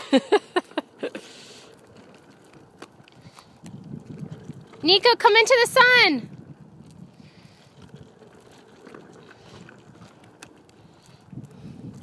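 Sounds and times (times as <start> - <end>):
plastic trike rolling on asphalt: 0.0 - 12.0.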